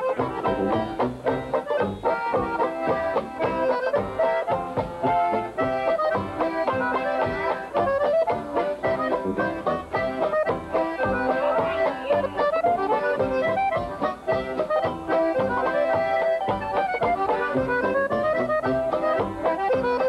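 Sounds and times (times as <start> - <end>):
polka band playing: 0.0 - 20.0
squeezebox melody: 0.0 - 20.0
strummed banjo: 0.0 - 20.0
tuba bass: 0.0 - 20.0.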